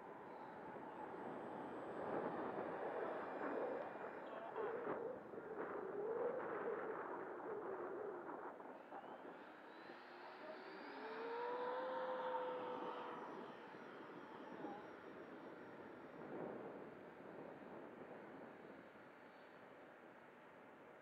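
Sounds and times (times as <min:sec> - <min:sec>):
electric ducted-fan jet whine: 0:07.9 - 0:21.0.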